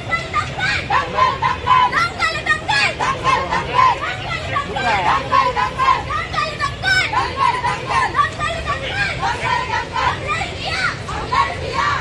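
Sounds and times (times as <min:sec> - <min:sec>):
women's voices chanting together: 0:09.2 - 0:12.0.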